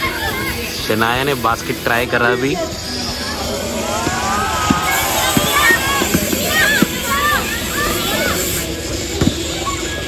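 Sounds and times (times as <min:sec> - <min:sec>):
distant children calling out: 0:03.0 - 0:08.8.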